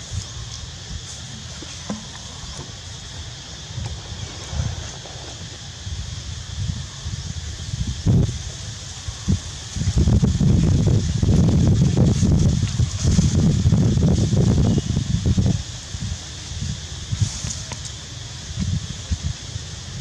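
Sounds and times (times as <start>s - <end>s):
steady high hiss: 0.0s - 20.0s
wind buffeting microphone: 0.0s - 20.0s.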